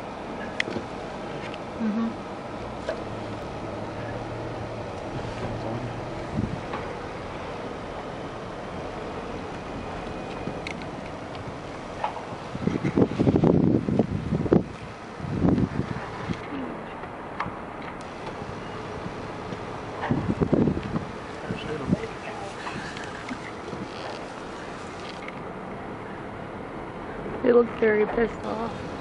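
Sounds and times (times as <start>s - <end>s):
vehicle noise: 0.0s - 29.0s
wind buffeting microphone: 4.1s - 16.5s, 18.0s - 29.0s.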